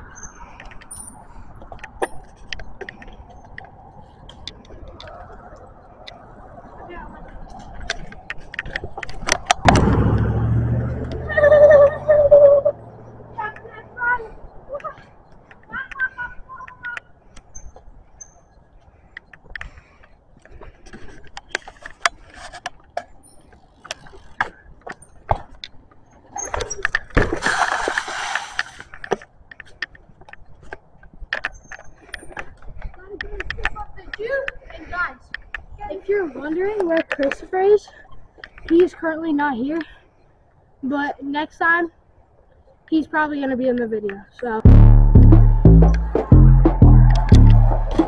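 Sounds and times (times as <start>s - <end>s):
wind and tyres on asphalt: 0.0s - 44.6s
sharp knocks: 9.6s - 10.8s
low rumble: 9.6s - 13.4s, 44.6s - 48.0s
wavering high tone: 44.7s - 48.0s.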